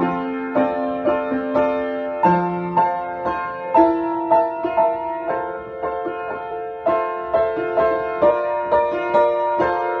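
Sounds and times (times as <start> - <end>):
slow piano improvisation: 0.0 - 10.0.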